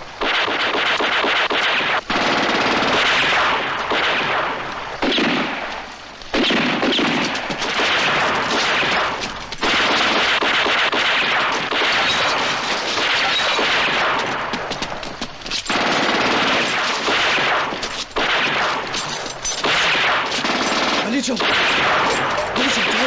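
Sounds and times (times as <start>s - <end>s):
automatic gunfire: 0.2s - 5.7s, 6.3s - 14.7s, 15.7s - 23.0s.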